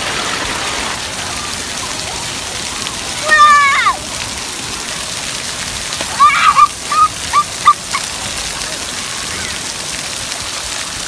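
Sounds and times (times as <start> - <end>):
water splattering on pavement: 0.0 - 11.0.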